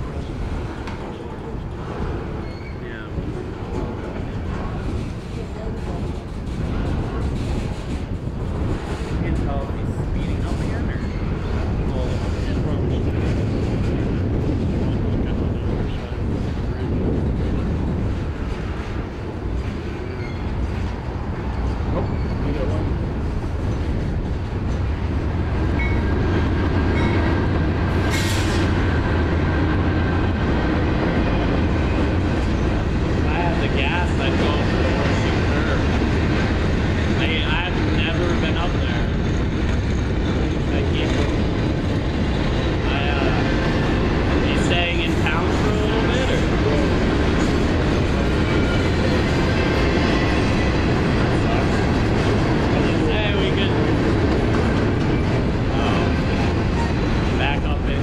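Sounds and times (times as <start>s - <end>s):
steel wheels rumbling on rail: 0.0s - 58.0s.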